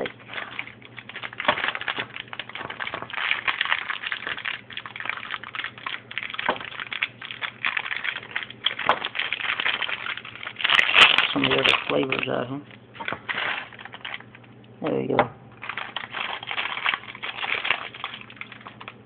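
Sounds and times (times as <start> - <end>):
candies clicking as they drop: 0.0 - 12.4, 15.6 - 19.0
plastic candy pouch crinkling: 0.0 - 14.5, 15.6 - 19.0.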